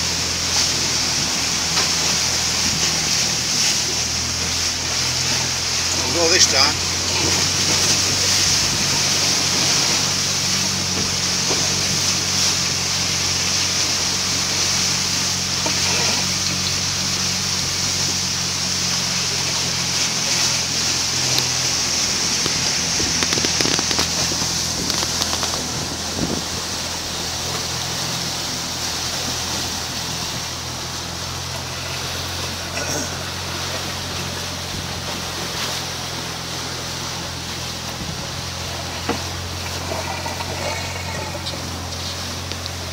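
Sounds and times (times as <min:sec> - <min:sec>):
water rushing along hulls: 0:00.0 - 0:42.9.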